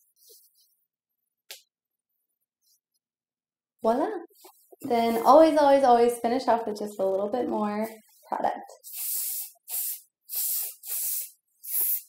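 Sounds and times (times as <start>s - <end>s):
aerosol spray hiss: 8.8s - 12.0s.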